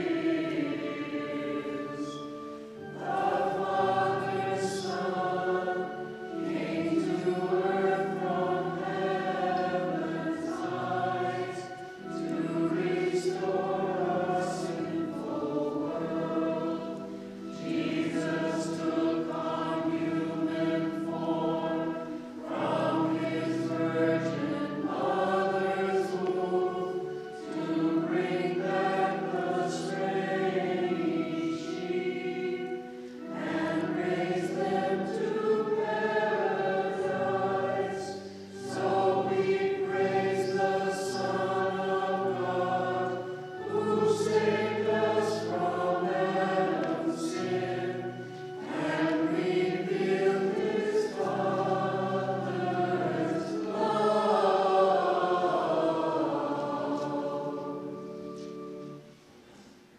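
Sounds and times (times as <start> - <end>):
group singing a hymn: 0.0 - 59.7.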